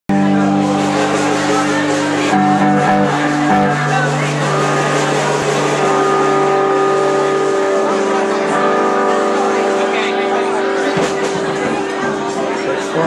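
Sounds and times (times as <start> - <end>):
band playing droning chord: 0.1 - 13.0.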